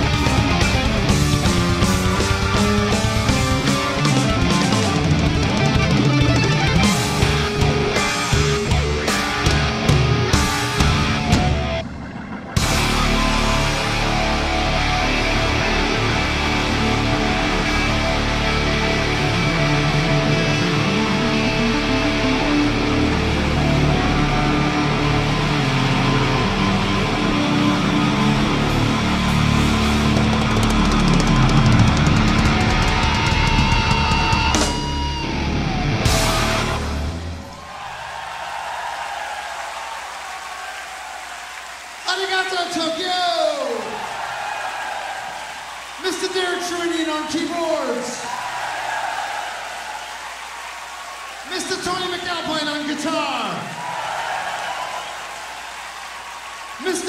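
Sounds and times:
live heavy rock band: 0.0s - 37.9s.

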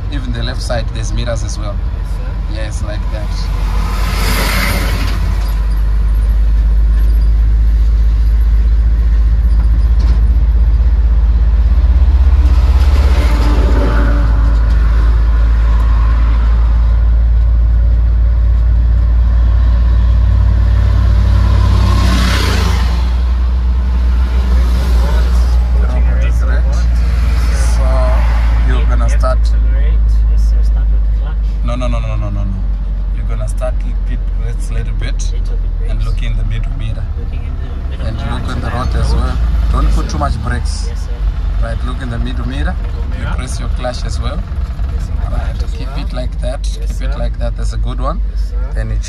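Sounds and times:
road noise: 0.0s - 49.0s
truck engine rumble: 0.0s - 49.0s.

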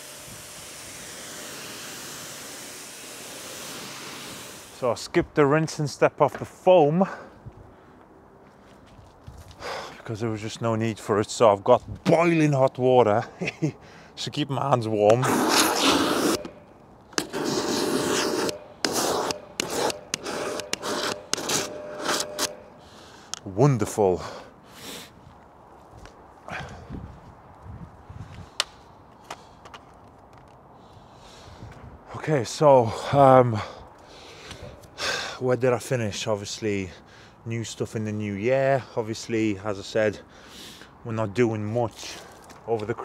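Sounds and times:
person speaking: 14.2s - 16.3s
sharp breath in: 40.3s - 41.0s.

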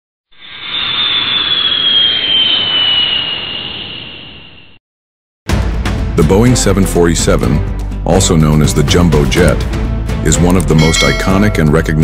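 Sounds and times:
jet engine whine and roar: 0.3s - 4.8s.

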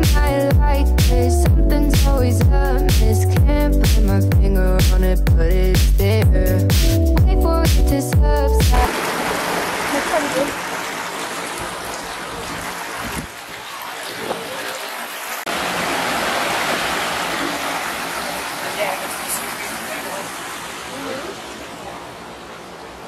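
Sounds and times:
music: 0.0s - 8.9s
stream rushing over rocks: 8.9s - 23.0s.

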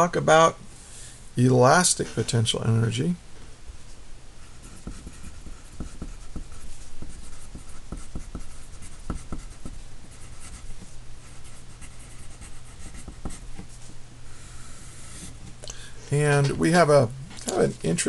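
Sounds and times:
pencil scratching on paper: 4.4s - 13.8s, 14.7s - 15.4s
pencil point tapping: 4.6s - 9.8s, 12.3s - 13.7s.

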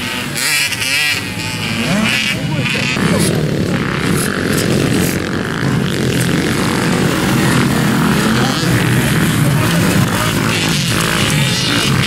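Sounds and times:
motocross bike engines: 0.0s - 12.0s.

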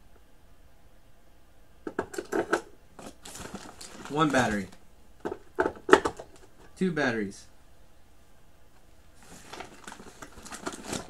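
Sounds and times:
paper bag rustling and crinkling: 3.0s - 4.8s, 9.2s - 11.0s.

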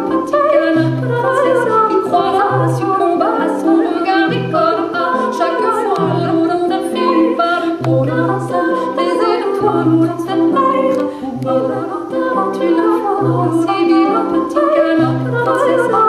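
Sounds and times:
looped vocal layers: 0.0s - 16.0s
woman singing without words: 0.0s - 16.0s.

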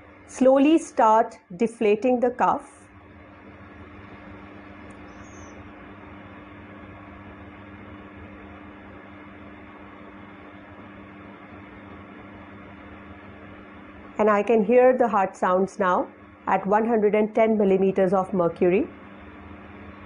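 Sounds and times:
low even hum: 0.0s - 20.0s.

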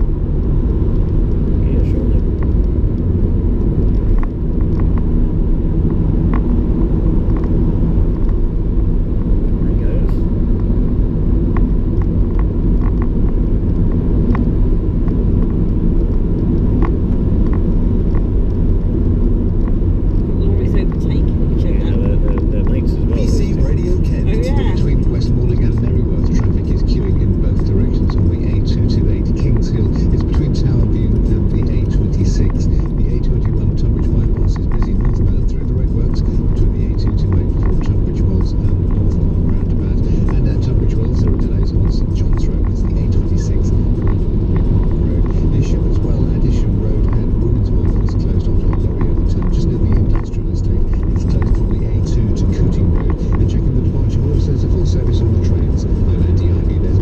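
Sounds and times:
road and engine rumble in car: 0.0s - 57.0s.

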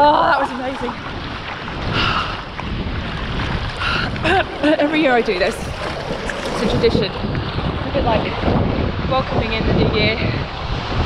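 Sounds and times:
sea waves: 0.0s - 11.0s
wind buffeting microphone: 0.0s - 11.0s.

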